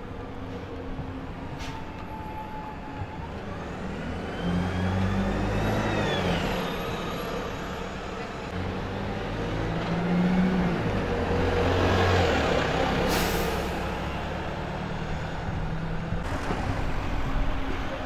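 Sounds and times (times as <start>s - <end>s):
diesel bus driving past: 0.0s - 18.0s.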